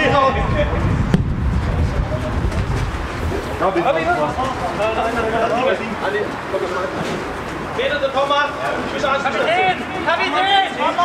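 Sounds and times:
wind rumble on microphone: 0:00.0 - 0:04.8.

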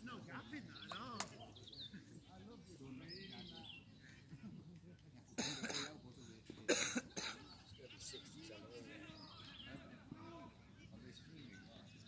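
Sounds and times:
faint distant voices: 0:00.0 - 0:12.0
person coughing: 0:05.4 - 0:05.9, 0:06.7 - 0:07.4.

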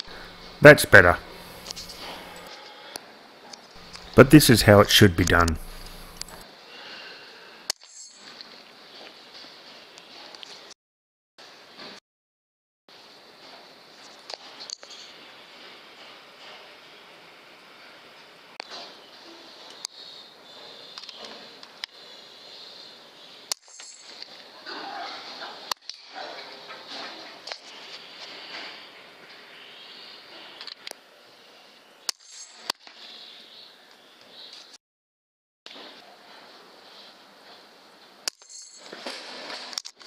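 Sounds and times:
background hiss: 0:00.0 - 0:02.5, 0:03.8 - 0:07.6.

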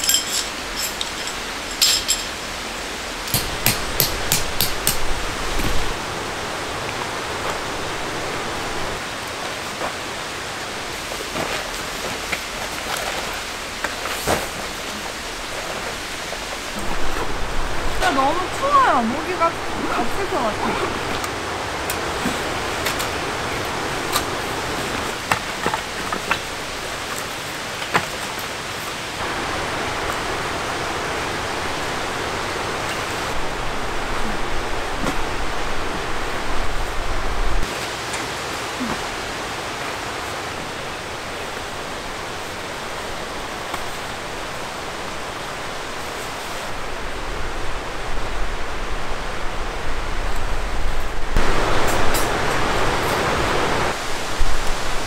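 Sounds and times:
camp gear clicking and knocking: 0:00.0 - 0:02.4, 0:03.3 - 0:05.8
stream rushing: 0:00.0 - 0:55.0.

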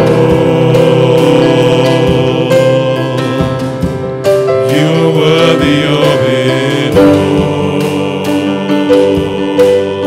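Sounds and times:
band accompaniment: 0:00.0 - 0:10.0
voices singing held notes: 0:00.0 - 0:10.0.

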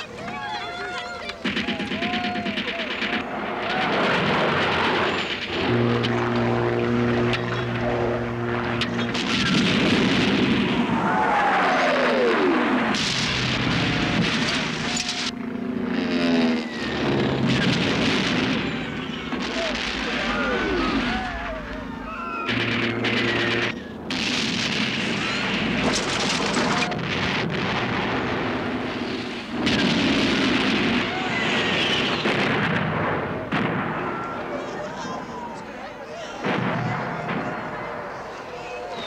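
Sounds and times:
people screaming and shouting: 0:00.0 - 0:05.3, 0:10.8 - 0:12.8, 0:13.5 - 0:15.3, 0:16.5 - 0:17.6, 0:18.4 - 0:23.8, 0:25.0 - 0:27.2, 0:30.9 - 0:32.3, 0:33.4 - 0:39.0
gunfire: 0:01.4 - 0:11.0, 0:12.5 - 0:15.4, 0:16.0 - 0:21.4, 0:22.4 - 0:34.3
explosions: 0:01.4 - 0:34.7, 0:36.4 - 0:38.2.

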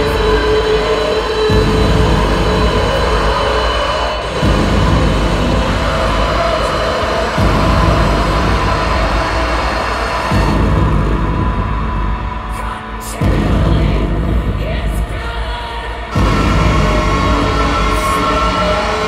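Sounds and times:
droning electronic music: 0:00.0 - 0:19.0
heavy low booms: 0:00.0 - 0:19.0.

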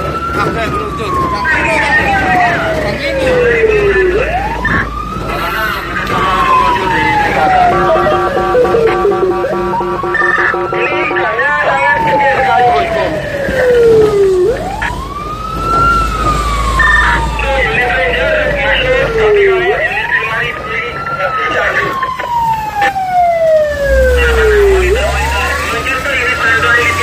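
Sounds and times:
siren wailing: 0:00.0 - 0:27.0
horn blast: 0:07.8 - 0:11.3.

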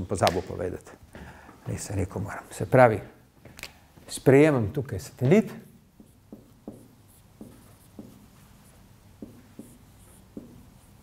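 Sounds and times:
marker scratching on whiteboard: 0:05.6 - 0:11.0
marker tip tapping: 0:06.0 - 0:08.2, 0:09.2 - 0:10.7.

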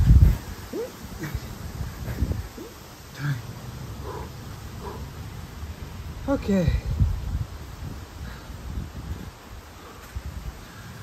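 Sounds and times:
leaves rustling: 0:00.0 - 0:11.0
wind rumbling on microphone: 0:00.0 - 0:11.0.

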